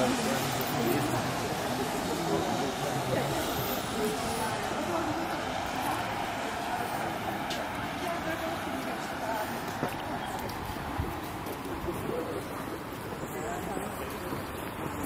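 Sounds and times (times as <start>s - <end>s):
indistinct conversation: 0.0s - 14.6s
traffic noise: 0.0s - 15.0s.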